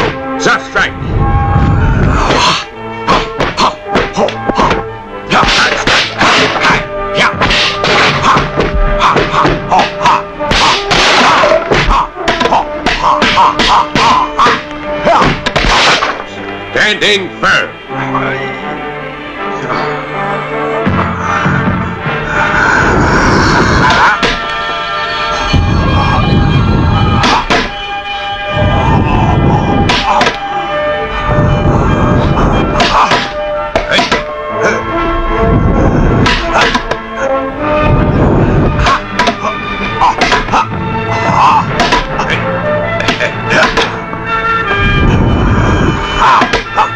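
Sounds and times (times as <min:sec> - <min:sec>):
film music score: 0:00.0 - 0:46.9
sharp whacks on bamboo: 0:05.4 - 0:16.3, 0:32.8 - 0:34.3, 0:36.2 - 0:37.0, 0:41.8 - 0:42.1.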